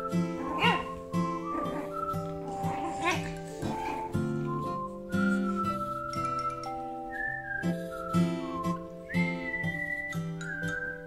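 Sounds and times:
background music: 0:00.0 - 0:11.0
puppy yelping: 0:00.3 - 0:04.2.

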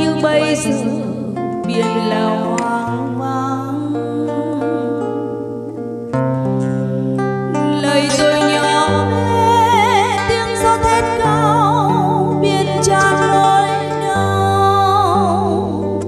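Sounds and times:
live guitar accompaniment: 0:00.0 - 0:16.0
woman singing a slow ballad: 0:00.0 - 0:16.0.

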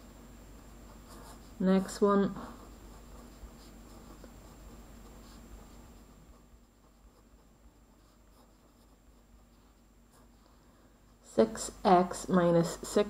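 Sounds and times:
pen writing on paper: 0:08.0 - 0:09.3.

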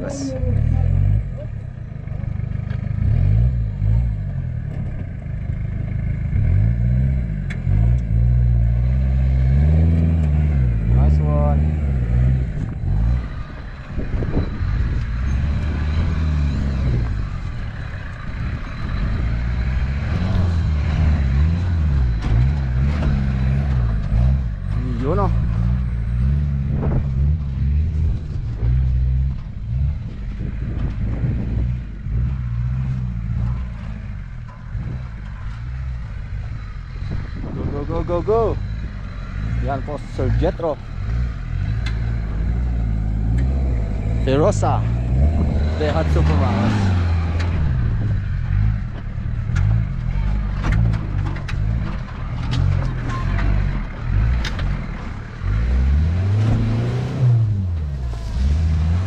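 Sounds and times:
engine revving: 0:00.0 - 0:59.0.

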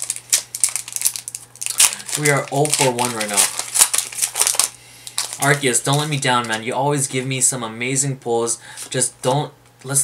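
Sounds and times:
foil wrapper crinkling and tearing: 0:00.0 - 0:06.7.

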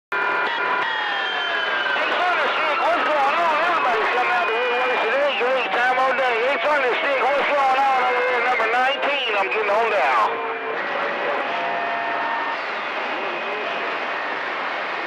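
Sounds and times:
radio whistles sliding in pitch: 0:00.5 - 0:02.9
distorted voices over radio: 0:01.8 - 0:15.0.

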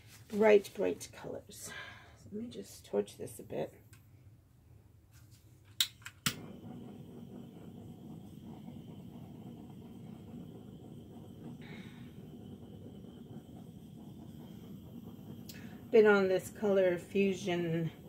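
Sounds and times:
torch igniter clicking: 0:05.8 - 0:18.0
torch flame rushing: 0:06.2 - 0:18.0.

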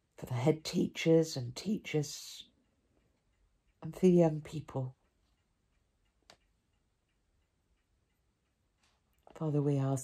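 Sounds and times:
clock ticking faintly: 0:00.0 - 0:10.0.

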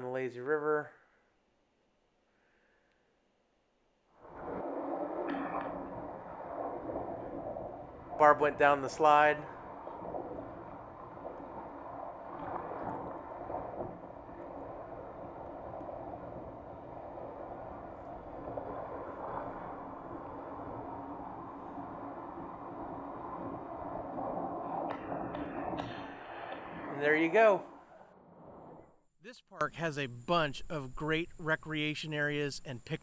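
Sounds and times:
water rushing along slide: 0:04.2 - 0:28.0
water splashing: 0:04.2 - 0:28.5.

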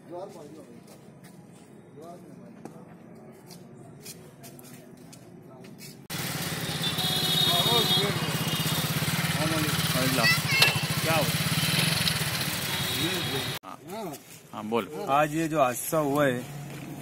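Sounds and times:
engine running: 0:06.1 - 0:13.6.

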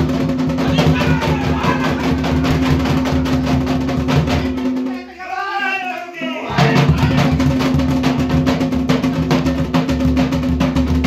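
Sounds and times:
barrel drum beaten with stick: 0:00.0 - 0:04.9, 0:06.5 - 0:11.0.

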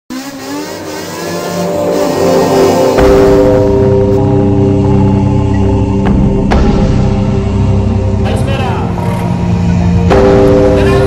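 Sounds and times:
car engine revving: 0:00.1 - 0:04.2.

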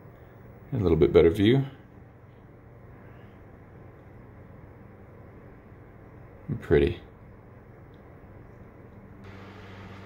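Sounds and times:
low hum: 0:07.2 - 0:10.0.

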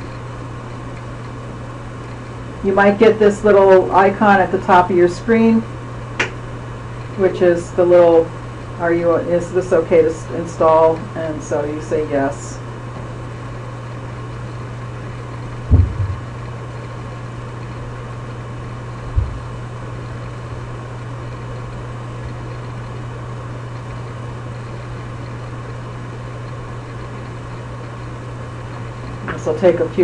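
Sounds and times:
low background hum: 0:00.0 - 0:30.0
low thumps: 0:15.6 - 0:16.5, 0:19.1 - 0:19.6.

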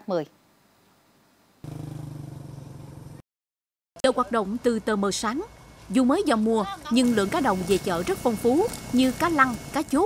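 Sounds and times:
small engine humming: 0:01.6 - 0:03.2, 0:04.2 - 0:10.0.

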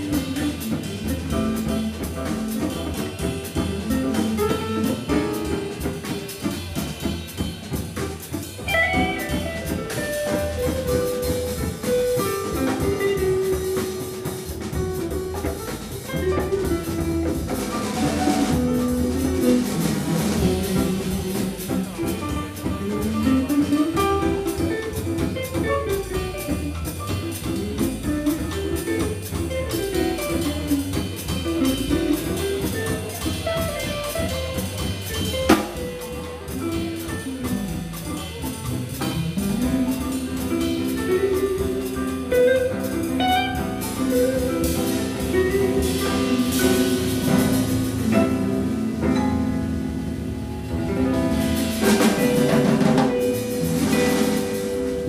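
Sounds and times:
double bass line: 0:00.0 - 0:55.0
drum kit: 0:00.0 - 0:55.0
electric guitars playing jazz: 0:00.0 - 0:55.0.

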